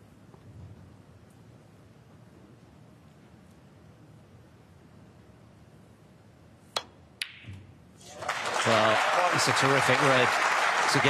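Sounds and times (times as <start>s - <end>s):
balls colliding click: 6.7s - 7.7s
audience applause: 8.0s - 11.0s.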